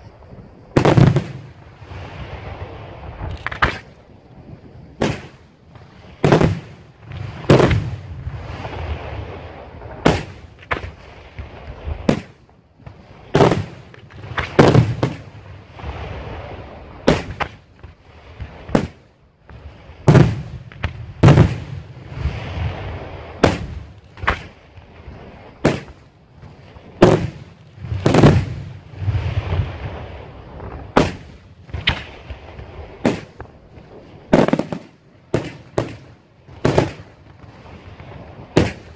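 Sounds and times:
firework shells bursting with echo: 10.0s - 38.9s.

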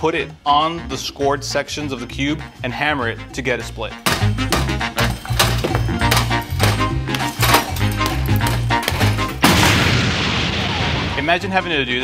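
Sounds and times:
music with steady beat and bass: 0.0s - 9.5s
loud explosion sound effect: 9.4s - 11.4s.

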